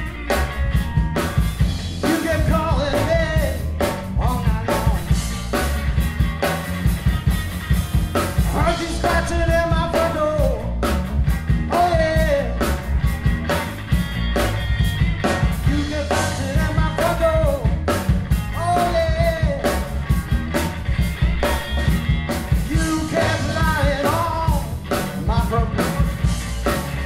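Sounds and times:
bass guitar: 0:00.0 - 0:27.0
drum kit steady beat: 0:00.0 - 0:27.0
electric guitar: 0:00.0 - 0:27.0
man singing: 0:02.0 - 0:05.3, 0:08.4 - 0:10.9, 0:11.7 - 0:12.8, 0:15.6 - 0:17.8, 0:18.5 - 0:19.9, 0:22.6 - 0:26.3.

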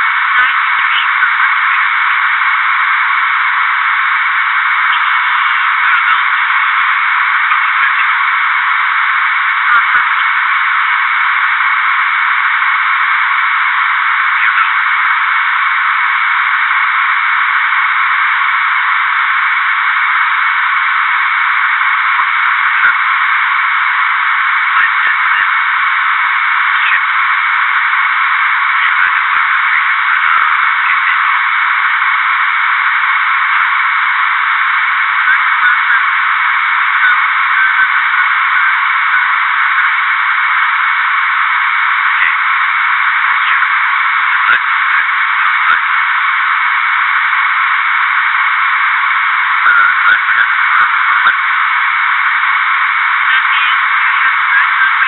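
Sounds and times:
thin radio-like hiss: 0:00.0 - 0:55.0.

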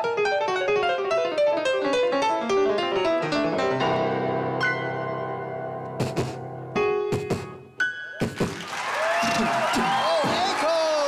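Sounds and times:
grand piano notes: 0:00.0 - 0:08.2
beatboxed percussion hits: 0:05.9 - 0:06.4, 0:07.1 - 0:08.7.

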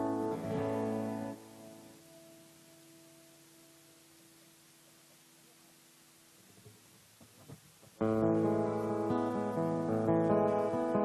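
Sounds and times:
strummed acoustic guitar chords: 0:00.0 - 0:01.8, 0:08.0 - 0:11.0.

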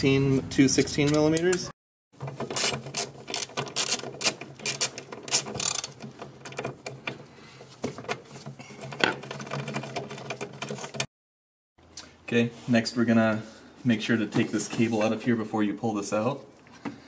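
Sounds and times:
hand ratchet clicking: 0:02.6 - 0:06.0.

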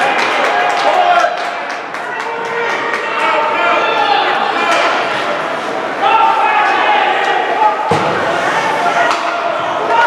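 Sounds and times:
voices calling out echoing: 0:00.0 - 0:10.0.

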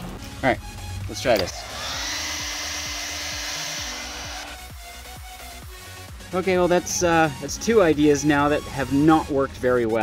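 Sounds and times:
background music: 0:00.0 - 0:10.0
hair dryer blowing air: 0:01.4 - 0:04.8.

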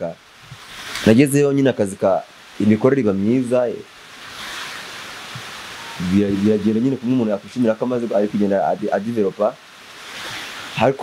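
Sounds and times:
steady hiss of noise: 0:00.0 - 0:11.0.

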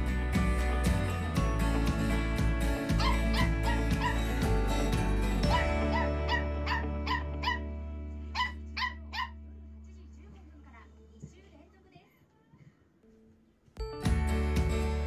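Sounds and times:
background music: 0:00.0 - 0:10.0, 0:13.8 - 0:15.0
puppy yipping: 0:03.0 - 0:04.4, 0:05.4 - 0:07.7, 0:08.3 - 0:09.4.

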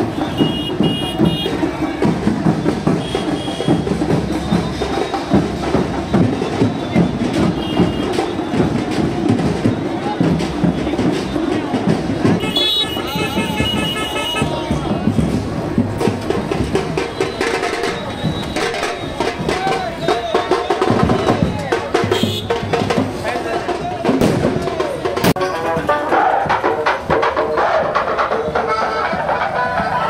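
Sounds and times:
crowd: 0:00.0 - 0:30.0
loud amplified music: 0:00.0 - 0:30.0
procession drums beating: 0:00.0 - 0:30.0.

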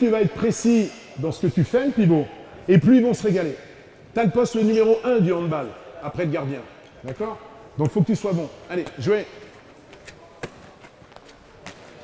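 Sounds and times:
handball smacks: 0:10.0 - 0:12.0.

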